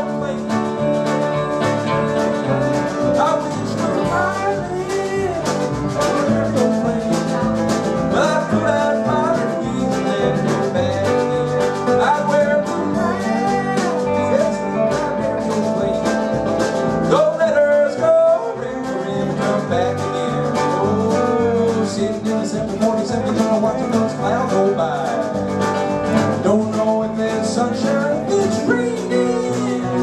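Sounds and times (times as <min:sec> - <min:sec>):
drums: 0:00.0 - 0:30.0
electric bass: 0:00.0 - 0:30.0
guitar: 0:00.0 - 0:30.0
mandolin: 0:00.0 - 0:30.0.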